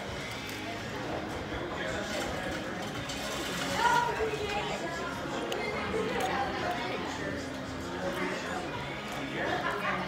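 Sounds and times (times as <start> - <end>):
restaurant chatter: 0.0 - 10.0.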